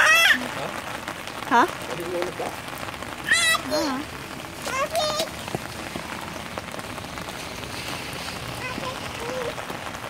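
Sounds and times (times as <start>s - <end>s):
child's high-pitched vocal sound: 0.0s - 0.4s, 3.3s - 5.3s, 8.6s - 9.6s
rain falling on wet pavement: 0.0s - 10.0s.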